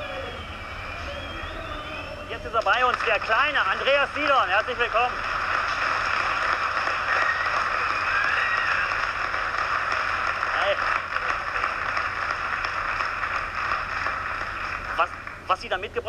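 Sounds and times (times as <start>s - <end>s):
audience applauding: 0.0s - 15.9s.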